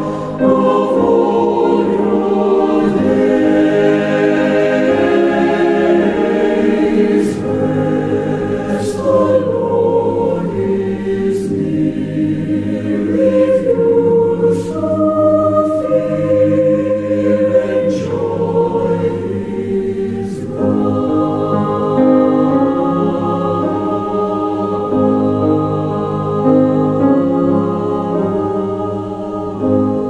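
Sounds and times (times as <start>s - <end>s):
choir singing held chords: 0.0s - 30.0s.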